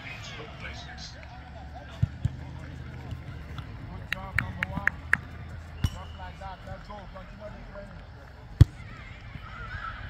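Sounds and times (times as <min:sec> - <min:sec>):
players shouting: 0:00.0 - 0:10.0.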